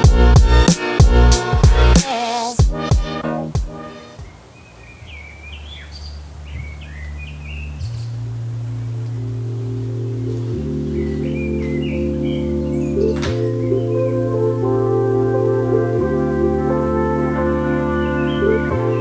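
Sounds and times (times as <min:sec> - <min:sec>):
soft sustained music chords: 0:03.1 - 0:19.0
birds chirping: 0:03.2 - 0:15.4, 0:17.4 - 0:19.0.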